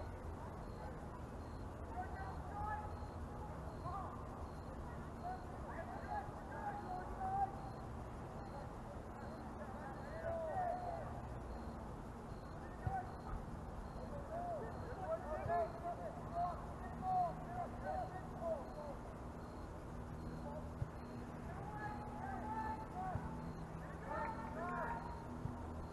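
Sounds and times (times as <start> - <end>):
distant shouts of players: 0.0 - 25.9
steady background noise: 0.0 - 25.9.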